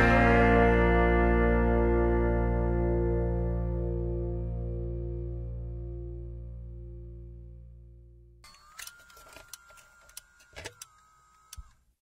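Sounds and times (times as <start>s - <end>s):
music: 0.0s - 8.4s.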